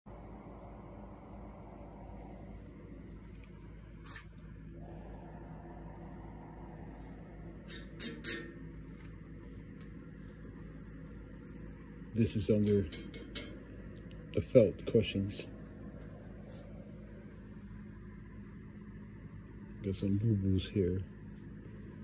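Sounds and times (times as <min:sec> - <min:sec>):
low hum of workshop room tone: 0:00.1 - 0:22.0.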